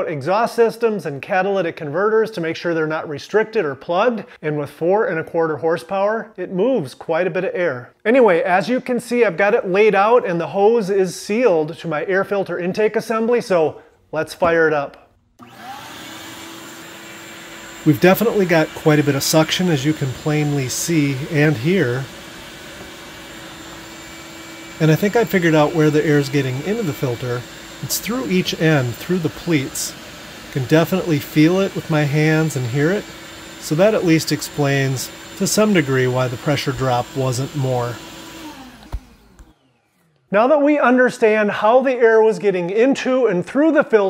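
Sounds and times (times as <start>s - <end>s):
shop vacuum drawing air: 15.4s - 40.3s.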